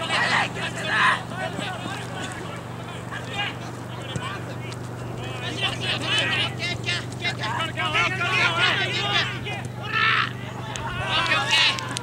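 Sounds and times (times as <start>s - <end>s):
distant players shouting: 0.0s - 12.0s
steady low hum: 0.0s - 12.0s.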